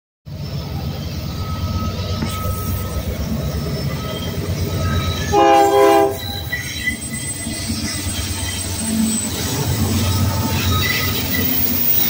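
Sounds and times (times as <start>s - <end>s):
diesel locomotive engine rumble: 0.3s - 12.0s
locomotive air horn blast: 5.3s - 6.3s.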